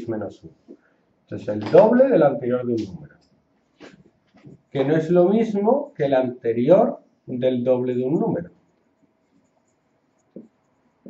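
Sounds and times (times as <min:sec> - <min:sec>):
marker writing on a whiteboard: 0:08.6 - 0:11.0.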